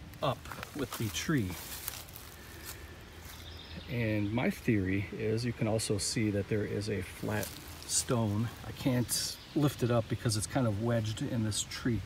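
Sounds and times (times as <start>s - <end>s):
woodland ambience: 0.0s - 12.0s.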